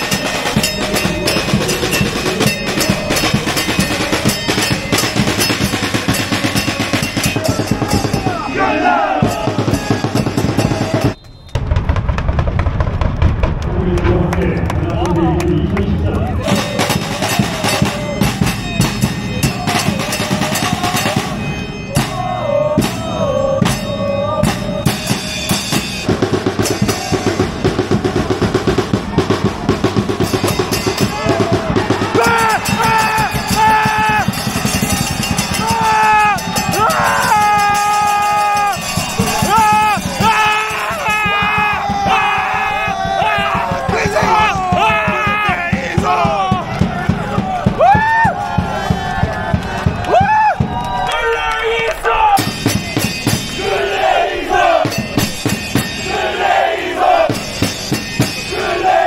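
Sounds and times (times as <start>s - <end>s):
fans chanting: 0.0s - 11.2s, 13.8s - 47.8s, 51.0s - 59.0s
drums and cymbal beating: 0.0s - 13.4s, 16.2s - 51.1s, 52.0s - 59.0s.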